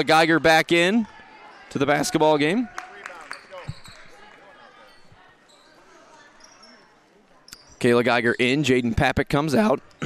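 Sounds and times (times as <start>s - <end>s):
low crowd murmur: 0.0s - 7.8s
basketball court noise: 0.8s - 9.0s.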